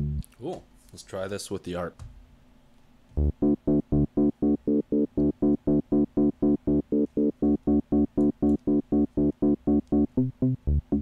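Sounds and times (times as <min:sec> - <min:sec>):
synthesizer arpeggio: 0:03.2 - 0:11.0.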